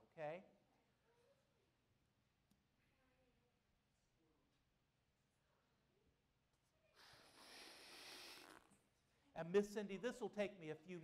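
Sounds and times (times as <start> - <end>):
air hissing into balloon: 7.0 - 8.7.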